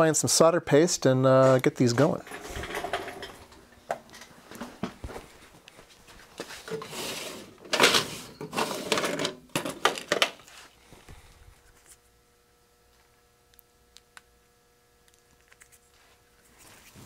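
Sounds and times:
clattering and rustling: 2.2 - 5.2, 6.4 - 10.4.

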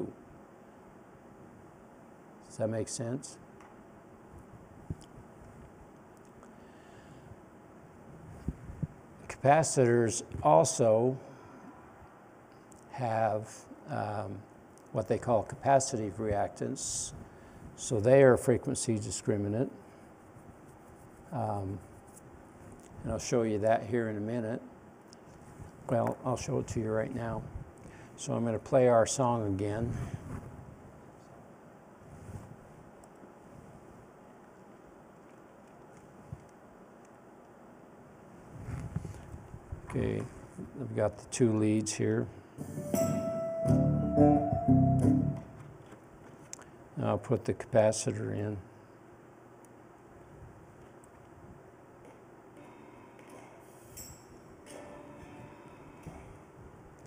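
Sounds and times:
faint room noise: 0.0 - 57.0
thin music through loudspeaker: 42.6 - 45.6.

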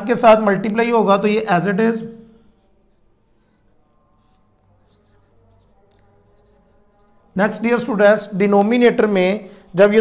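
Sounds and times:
marker writing on whiteboard: 0.1 - 9.2.

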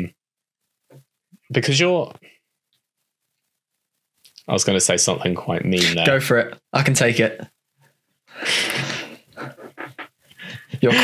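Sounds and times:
man speaking: 1.5 - 2.2, 4.3 - 7.5, 10.7 - 11.0
suppressed laughter: 8.4 - 11.0.

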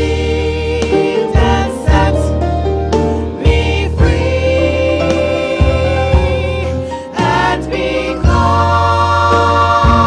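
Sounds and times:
women singing in harmony: 0.0 - 2.4, 3.3 - 10.0
piano with low bass notes: 0.0 - 10.0.

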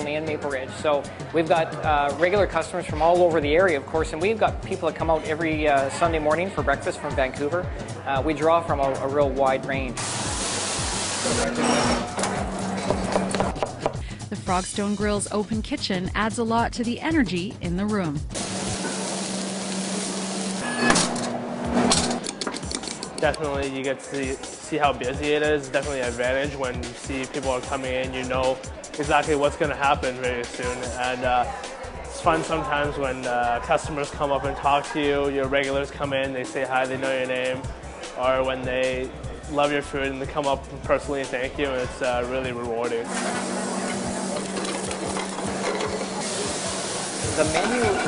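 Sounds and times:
grill hissing: 10.0 - 12.8, 18.4 - 22.2, 43.1 - 48.0.

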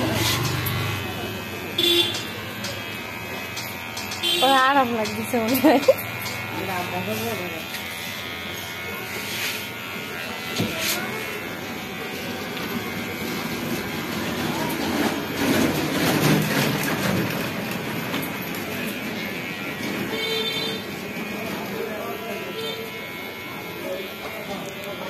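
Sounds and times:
electric hair clippers buzzing: 0.0 - 25.0.

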